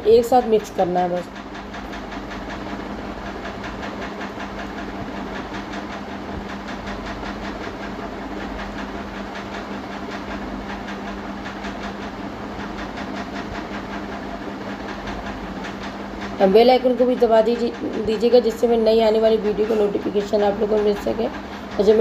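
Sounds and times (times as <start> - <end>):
mechanical hum: 0.0 - 22.0.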